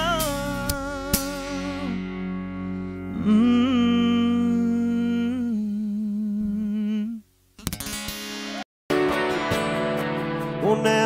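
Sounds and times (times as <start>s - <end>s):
singer humming long note: 0.0s - 7.2s.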